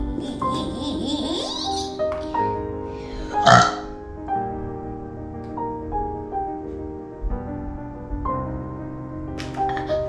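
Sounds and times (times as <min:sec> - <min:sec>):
soft piano music: 0:00.0 - 0:10.0
loud burp-like sound: 0:03.3 - 0:03.9.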